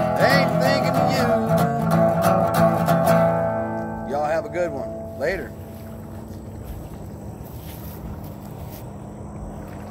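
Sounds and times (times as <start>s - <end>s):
low outdoor rumble: 0.0s - 9.9s.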